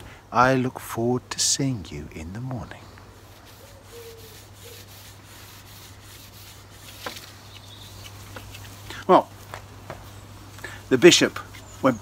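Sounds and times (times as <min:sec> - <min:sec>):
handling noise rubbing: 0:03.0 - 0:10.3.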